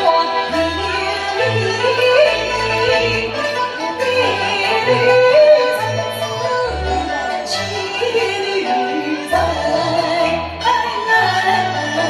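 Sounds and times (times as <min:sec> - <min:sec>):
opera singing with vibrato: 0:00.0 - 0:12.0
traditional instrumental accompaniment: 0:00.0 - 0:12.0.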